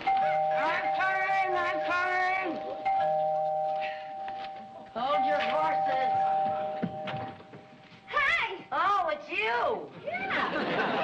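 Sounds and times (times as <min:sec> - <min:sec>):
doorbell chime: 0:00.0 - 0:07.6.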